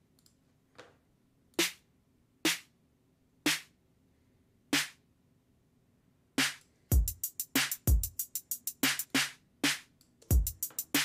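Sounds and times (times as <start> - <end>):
electronic snare hits: 1.6 - 1.8, 2.5 - 2.7, 4.8 - 5.0.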